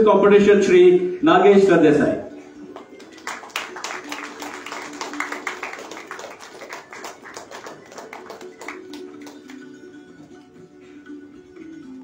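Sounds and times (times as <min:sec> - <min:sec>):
audience clapping: 0:02.7 - 0:09.8.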